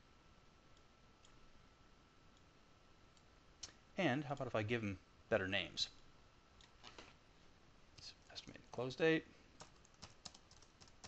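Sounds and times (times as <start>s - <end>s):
faint room hiss: 0.0s - 11.0s
soft computer mouse clicks: 0.8s - 1.4s.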